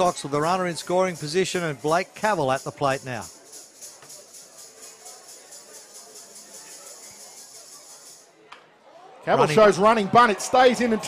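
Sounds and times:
ballpark ambience: 0.0s - 11.0s.

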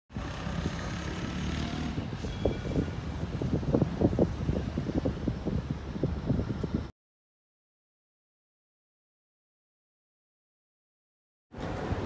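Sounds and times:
low rumble of traffic: 0.1s - 6.9s, 11.5s - 12.0s
wind buffeting microphone: 0.1s - 6.9s.

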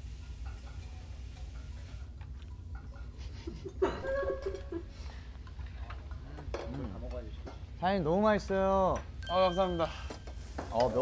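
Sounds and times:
soft laughter: 3.1s - 5.0s.

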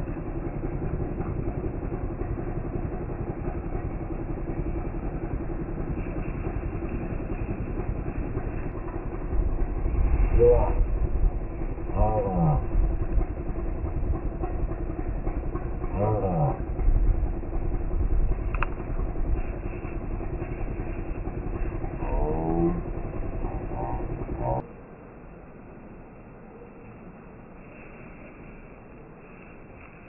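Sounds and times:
vehicle engines rumbling: 0.0s - 30.0s
vehicles passing: 0.0s - 30.0s.

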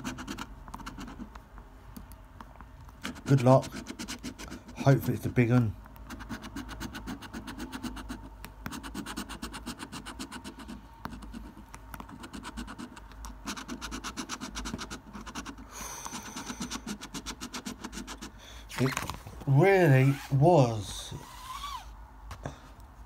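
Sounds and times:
coin scratching a scratchcard: 0.0s - 1.3s, 3.0s - 19.0s.

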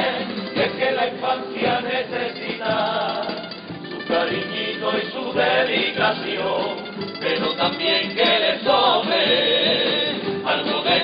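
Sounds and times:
male chorus singing in harmony: 0.0s - 11.0s.

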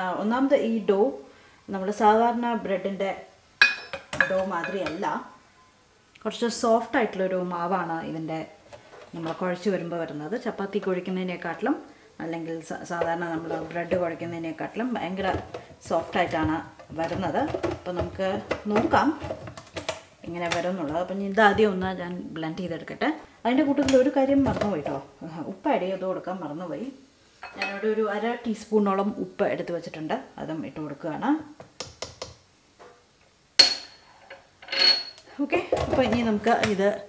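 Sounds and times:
woman talking: 0.0s - 3.3s, 4.2s - 5.3s, 6.2s - 19.2s, 20.2s - 27.0s, 27.6s - 31.5s, 35.3s - 37.0s
metal cup clinking on glass bowl: 3.6s - 5.0s, 27.4s - 27.9s.

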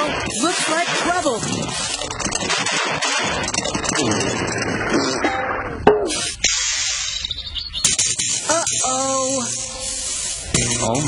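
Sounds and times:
cartoon hissing sound effect: 7.8s - 11.0s.

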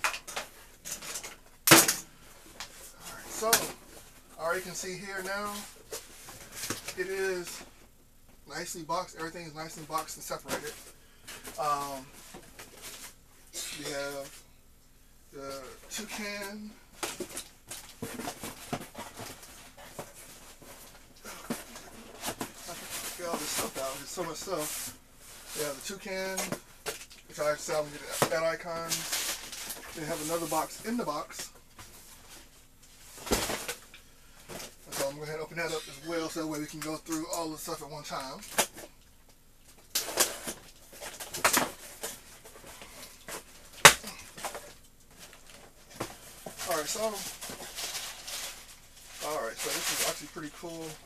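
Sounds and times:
cardboard rustling and scraping: 2.4s - 7.7s, 9.1s - 14.4s, 15.5s - 26.6s, 27.3s - 36.4s, 39.9s - 51.0s
cardboard knocks and crinkles: 17.0s - 23.8s, 33.2s - 33.9s.

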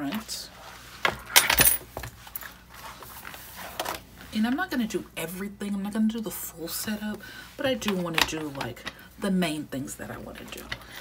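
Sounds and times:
planner pages flipped on discs: 2.0s - 4.3s, 7.7s - 9.0s.

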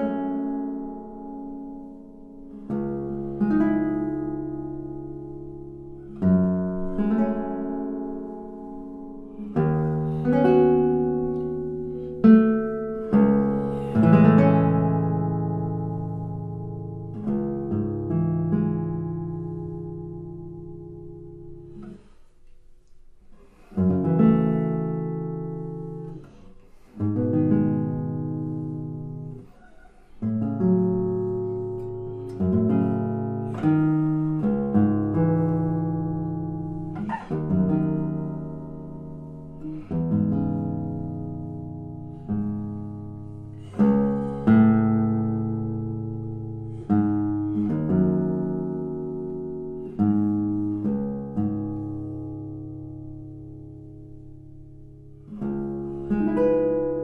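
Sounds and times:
classical guitar chords: 0.0s - 57.0s.

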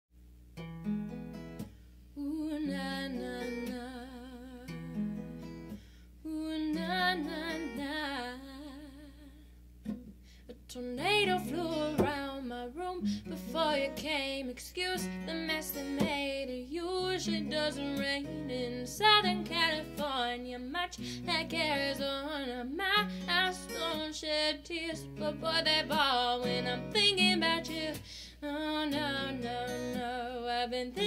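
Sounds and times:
acoustic guitar picking: 0.6s - 1.8s, 2.6s - 5.9s, 6.6s - 8.2s, 9.8s - 10.2s, 11.0s - 31.0s
wordless singing with vibrato: 2.2s - 4.9s, 6.2s - 9.4s, 10.5s - 31.0s.

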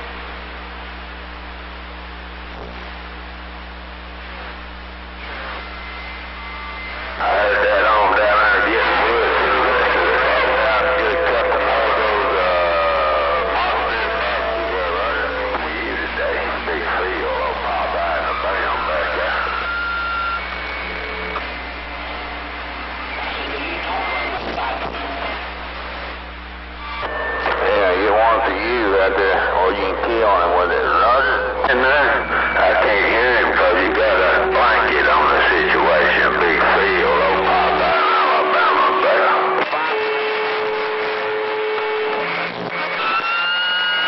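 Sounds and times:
steady low hum: 0.0s - 42.9s
radio static: 0.0s - 44.0s
garbled radio voices: 6.9s - 43.4s.

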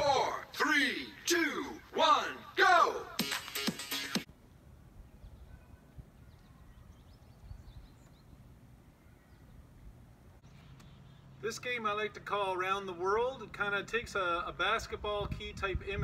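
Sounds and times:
faint outdoor background: 0.0s - 16.0s.

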